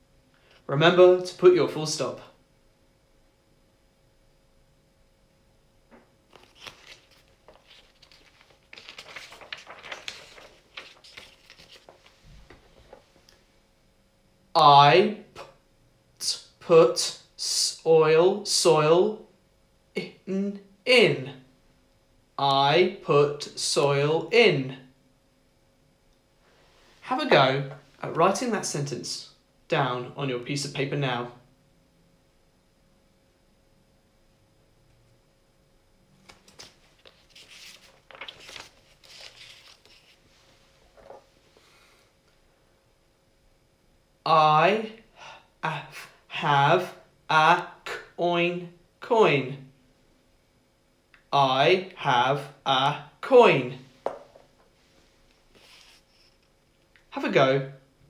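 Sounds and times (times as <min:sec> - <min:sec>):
paper card rustling: 0:06.3 - 0:13.1, 0:36.2 - 0:41.3.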